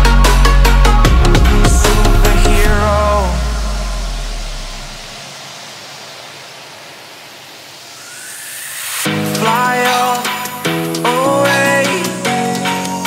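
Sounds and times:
deep bass boom: 0.8s - 5.2s
hissing whoosh rising sweep: 0.8s - 12.2s.

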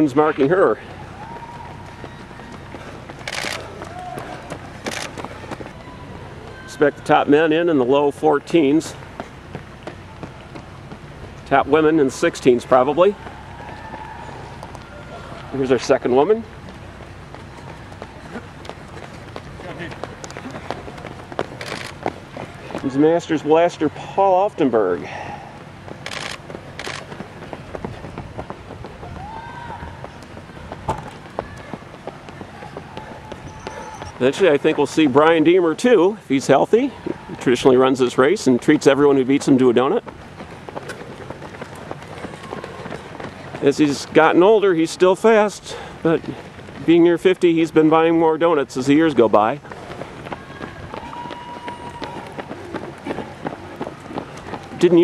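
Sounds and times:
distant murmur of voices: 0.0s - 47.2s, 48.9s - 55.0s
runners' footsteps on asphalt: 0.0s - 55.0s.

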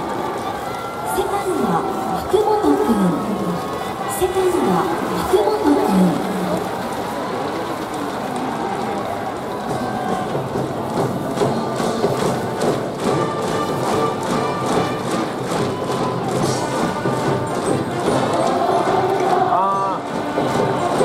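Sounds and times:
crowd of voices: 0.0s - 21.0s
brass band with drums playing: 9.9s - 21.0s.

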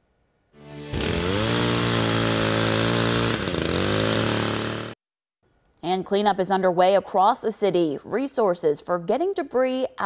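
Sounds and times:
pole saw engine revving: 0.6s - 5.0s.

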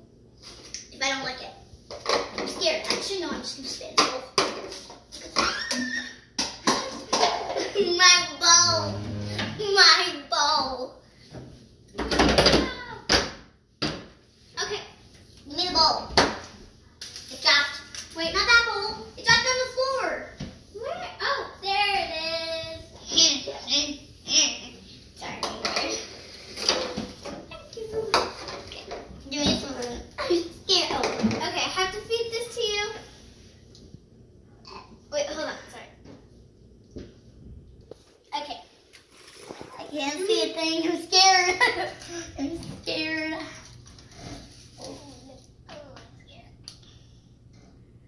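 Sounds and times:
child vocalizing: 8.5s - 9.8s
loud long noise: 8.6s - 9.6s.

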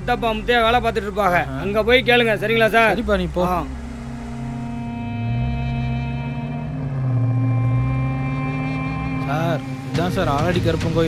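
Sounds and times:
film score low drone: 0.0s - 11.0s.

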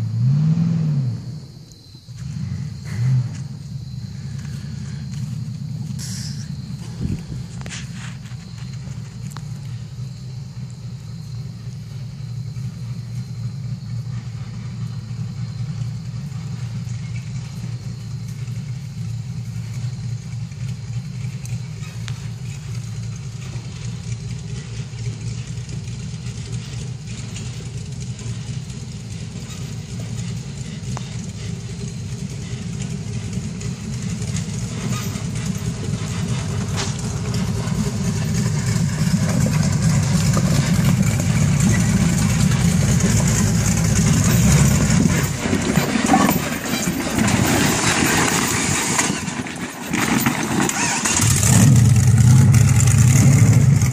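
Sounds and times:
buggy engine running: 0.0s - 53.9s.

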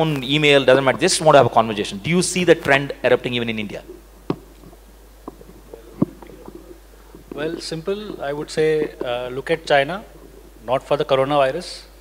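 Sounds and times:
quiet hall tone: 0.0s - 12.0s
microphone handling noise: 2.4s - 10.8s.

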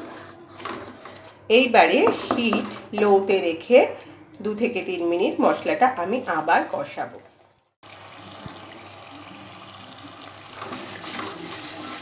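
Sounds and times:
spatula scraping a wok: 0.0s - 1.4s.

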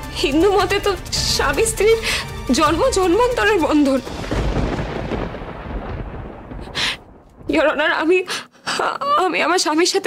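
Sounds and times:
deep thunder-like rumble: 2.7s - 8.1s.

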